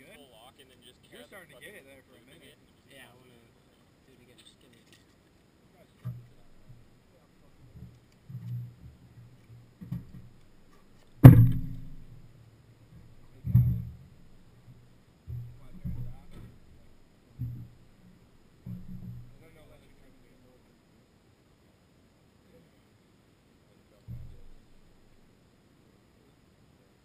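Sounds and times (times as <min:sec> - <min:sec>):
muffled low knocks and rumbles: 0:06.0 - 0:20.5, 0:24.0 - 0:25.2
sharp thump: 0:09.8 - 0:12.3, 0:13.0 - 0:18.0, 0:24.1 - 0:24.8.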